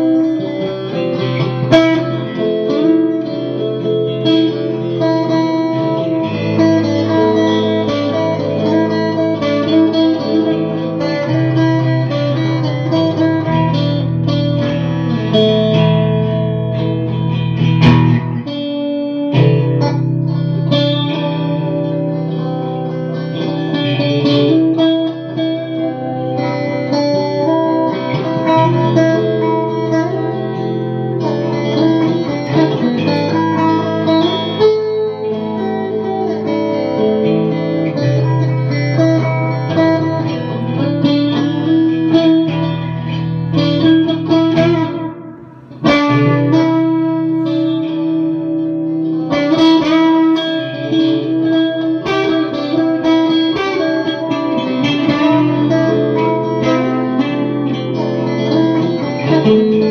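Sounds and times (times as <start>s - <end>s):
electric guitar with effects: 0.0s - 59.9s.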